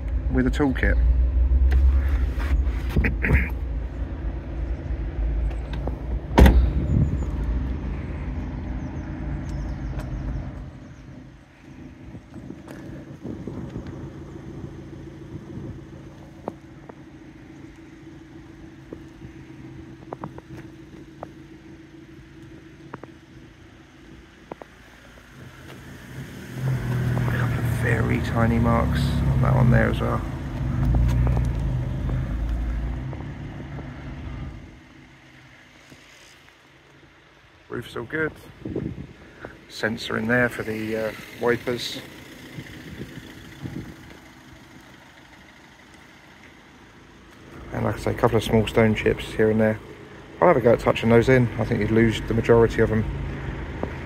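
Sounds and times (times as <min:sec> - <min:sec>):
low rumble and hum: 0:00.0 - 0:37.7, 0:38.5 - 0:54.0
car tailgate thud: 0:06.3 - 0:06.9.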